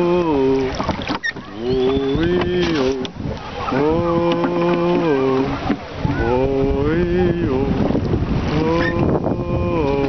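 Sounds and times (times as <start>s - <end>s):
wind buffeting microphone: 0.0s - 10.0s
person chanting wordlessly: 3.7s - 7.9s, 8.5s - 10.0s.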